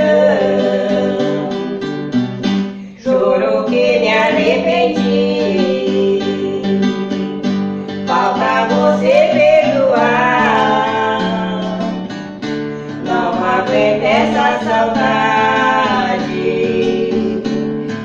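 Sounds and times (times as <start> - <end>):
two women singing: 0.0 - 2.1, 2.9 - 18.0
guitar backing: 0.0 - 18.0.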